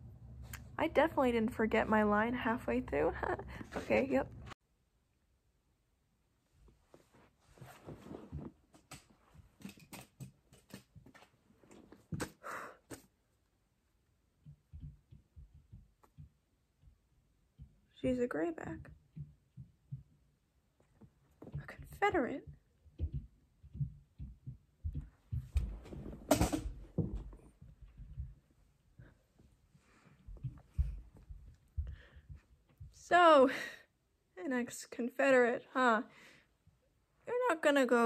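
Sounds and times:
handling noise clicks and knocks: 8.7s - 13.0s, 22.8s - 28.4s.

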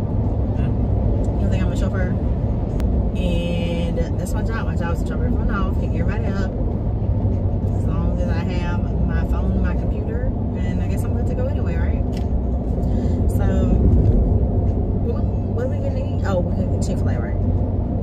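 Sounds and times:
road and engine rumble: 0.0s - 18.0s
people talking: 0.6s - 2.2s, 3.2s - 6.5s, 7.8s - 12.1s, 13.3s - 13.9s, 15.0s - 17.4s.

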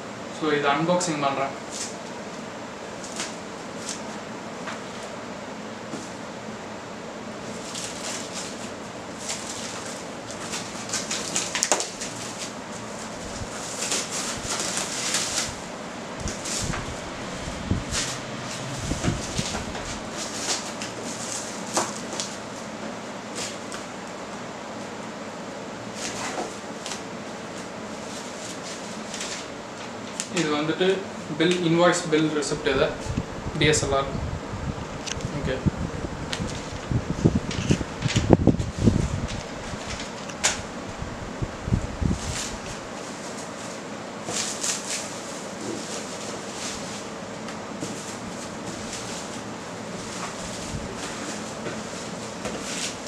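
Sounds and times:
steady hum: 0.0s - 53.0s
plastic wrapping crinkling: 7.4s - 22.7s, 25.9s - 30.4s, 42.1s - 53.0s.

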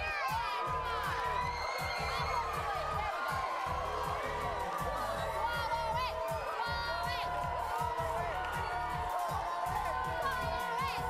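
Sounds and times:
background music with steady beat: 0.0s - 11.0s
children cheering and shouting: 0.0s - 11.0s.

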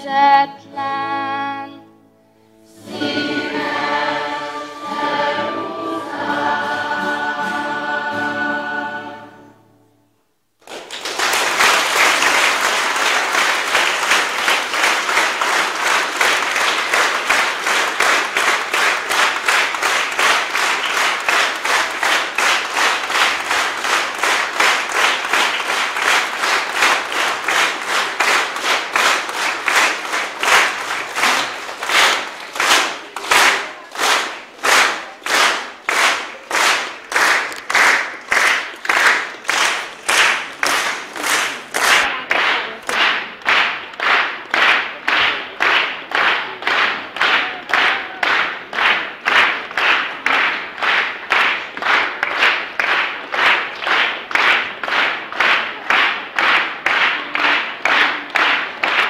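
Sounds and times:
audience applauding: 10.6s - 59.0s.

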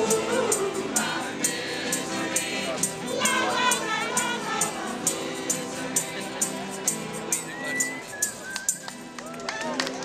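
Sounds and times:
keyboard and acoustic guitar music: 0.0s - 9.2s
short whistled note: 7.4s - 8.9s.

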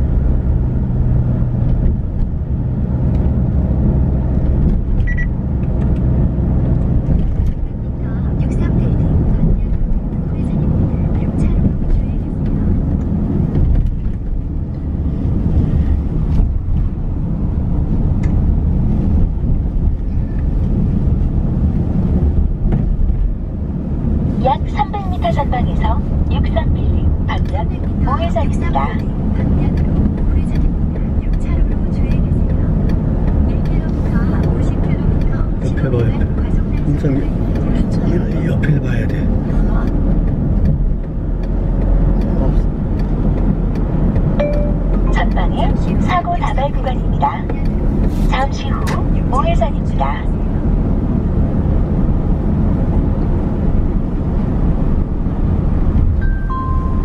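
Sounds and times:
car road and engine rumble: 0.0s - 57.0s.

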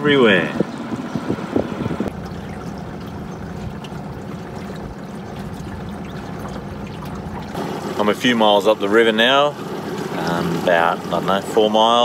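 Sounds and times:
outboard motor humming: 0.0s - 12.0s
water rushing along hull: 0.0s - 12.0s
water splashing and lapping: 0.6s - 12.0s.

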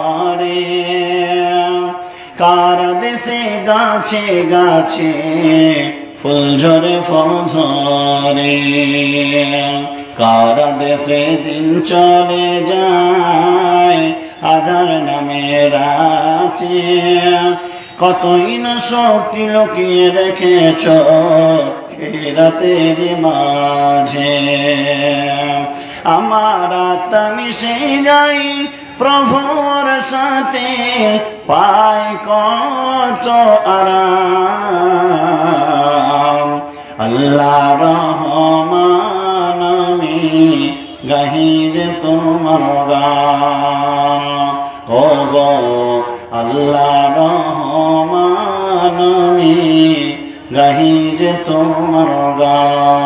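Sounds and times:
man chanting in sing-song style: 0.0s - 53.0s
singer breathing: 1.9s - 2.4s, 9.9s - 10.2s, 14.1s - 14.4s, 17.6s - 18.0s, 25.6s - 26.1s, 28.6s - 29.0s, 36.6s - 37.0s.

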